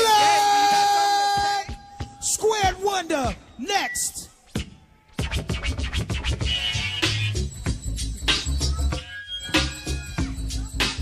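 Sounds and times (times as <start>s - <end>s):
hip hop beat: 0.0s - 11.0s
record scratching: 5.2s - 7.4s.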